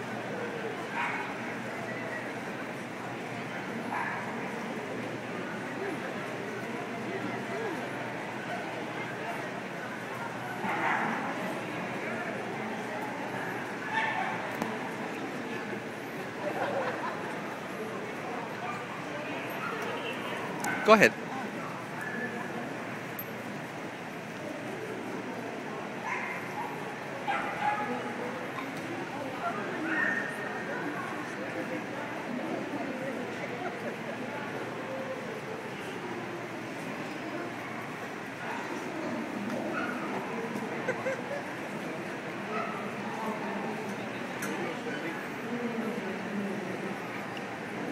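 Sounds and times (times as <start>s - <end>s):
crowd murmur in a hall: 0.0s - 47.9s.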